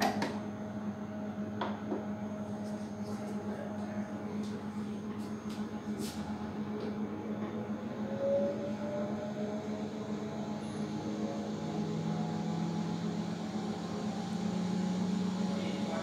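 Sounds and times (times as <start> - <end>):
centrifuge motor hum and whine: 0.0 - 16.0.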